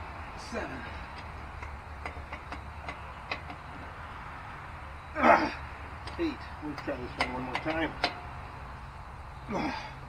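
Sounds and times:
wrench clicking on lug nut: 1.1s - 3.8s, 6.0s - 8.3s
person grunting: 5.2s - 5.6s, 9.5s - 10.0s.

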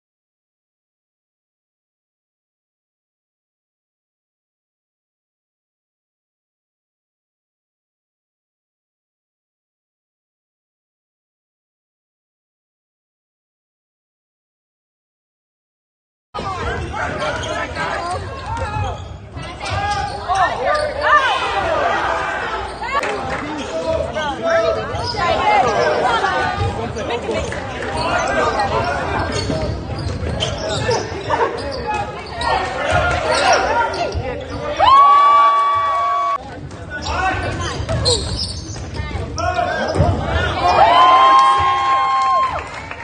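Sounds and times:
voices echoing in gym: 16.4s - 35.0s, 36.3s - 41.8s.

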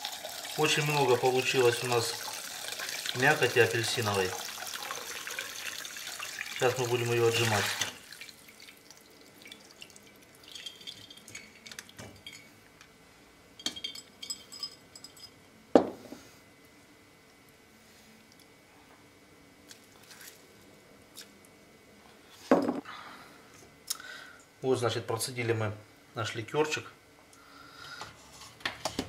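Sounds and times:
liquid dripping through sieve: 0.0s - 12.0s
glass and metal clinks: 13.6s - 15.4s.

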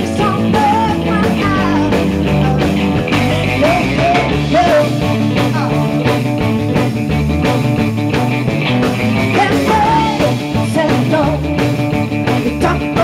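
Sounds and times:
woman singing: 0.0s - 2.1s, 3.5s - 5.2s, 9.3s - 11.7s, 12.4s - 13.0s
bass guitar: 0.0s - 13.0s
electric guitar: 0.0s - 13.0s
steady drum beat: 0.0s - 13.0s.

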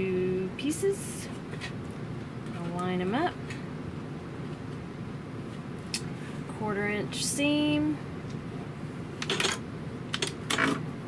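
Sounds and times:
woman speaking: 0.0s - 1.4s, 2.5s - 3.6s, 6.5s - 8.0s.

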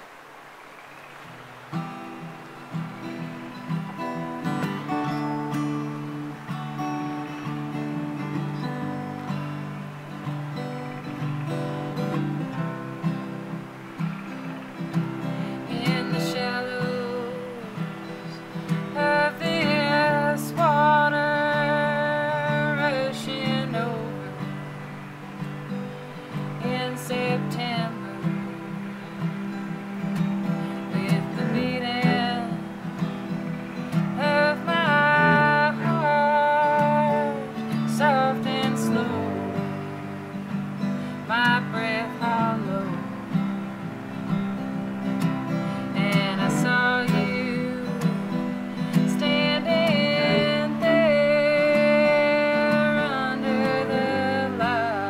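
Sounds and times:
acoustic guitar strumming: 1.2s - 55.0s
bowed cello: 1.7s - 43.8s.

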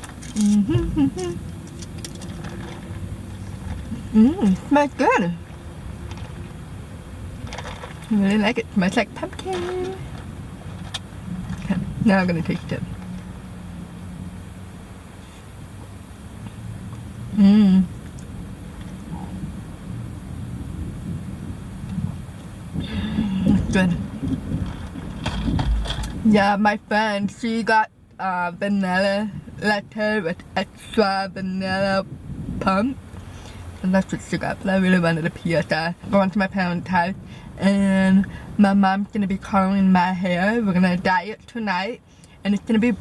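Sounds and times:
low rumble inside car cabin: 0.0s - 43.0s.

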